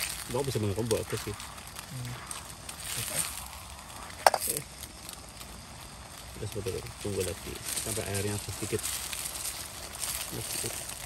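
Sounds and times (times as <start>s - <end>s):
low steady background noise: 0.0s - 11.0s.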